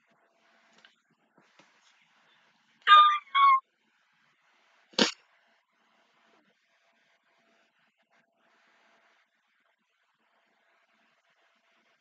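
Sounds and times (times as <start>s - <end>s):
woman squealing: 2.9s - 3.6s.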